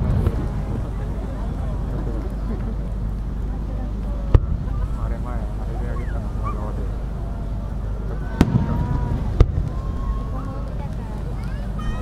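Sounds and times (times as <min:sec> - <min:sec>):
low rumble: 0:00.0 - 0:12.0
fireworks bangs: 0:08.1 - 0:11.3.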